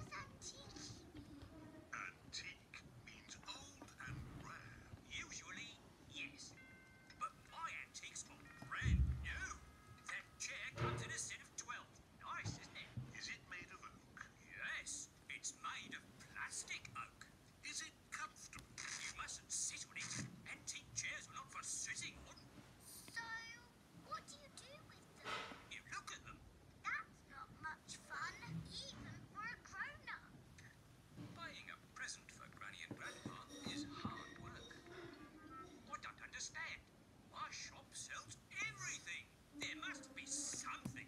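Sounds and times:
cartoon dialogue through small speaker: 0:00.0 - 0:41.0.

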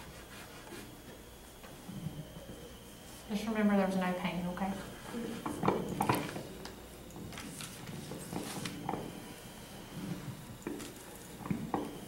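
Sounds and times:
paper rustling: 0:07.3 - 0:08.8.

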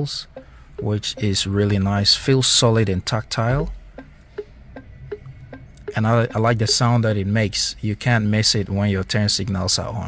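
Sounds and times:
turn signal indicator ticking: 0:00.0 - 0:10.0.

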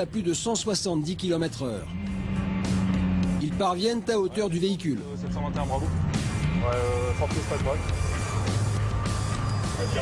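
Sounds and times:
background music: 0:00.0 - 0:10.0
car engine and road noise: 0:00.0 - 0:10.0.

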